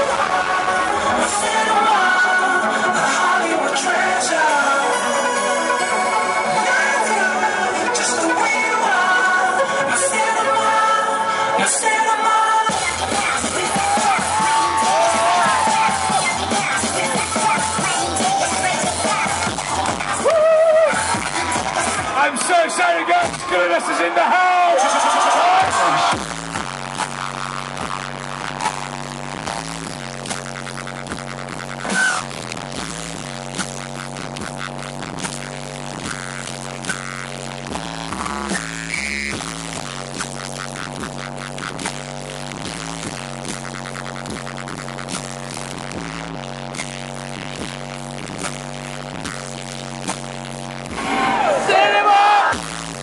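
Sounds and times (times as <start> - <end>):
electronic dance music: 0.0 - 53.0.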